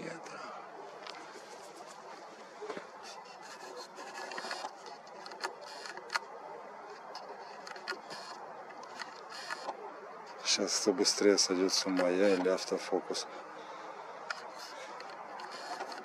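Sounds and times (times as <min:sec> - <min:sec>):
camera focus motor whirring: 0:03.5 - 0:06.3, 0:07.1 - 0:09.8
small clicks: 0:03.9 - 0:06.3.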